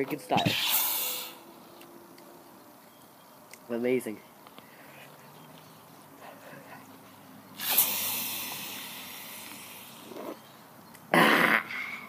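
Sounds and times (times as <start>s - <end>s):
soda hissing from a can: 0.4s - 1.4s, 7.6s - 10.3s.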